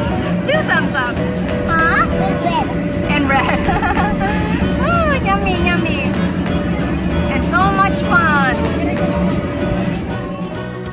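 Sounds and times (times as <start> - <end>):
gliding melody: 0.0 - 10.9
low accompaniment: 0.0 - 10.9.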